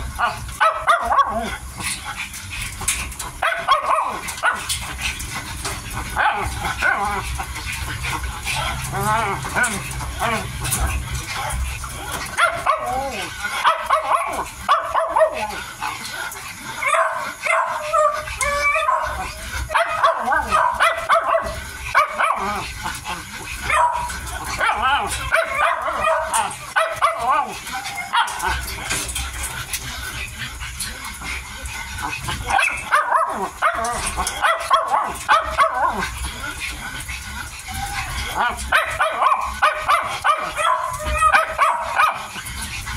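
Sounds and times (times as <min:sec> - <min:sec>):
puppies feeding clicks and smacks: 0:00.0 - 0:42.9
puppies whining and yipping: 0:16.8 - 0:21.4, 0:23.7 - 0:29.2, 0:32.0 - 0:42.9.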